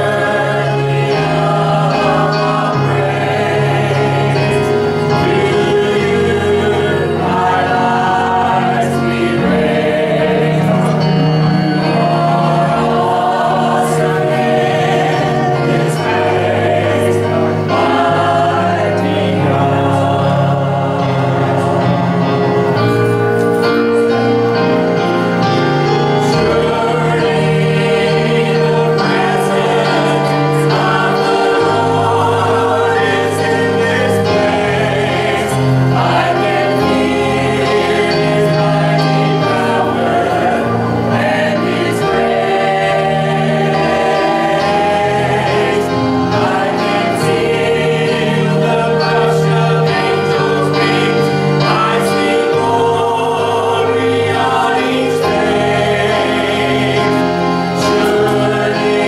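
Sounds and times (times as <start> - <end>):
church choir singing a hymn: 0.0 - 59.0.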